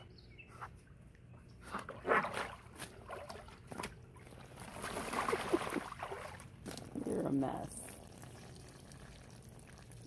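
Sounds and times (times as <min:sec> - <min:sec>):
water sloshing and splashing: 0:01.3 - 0:10.0.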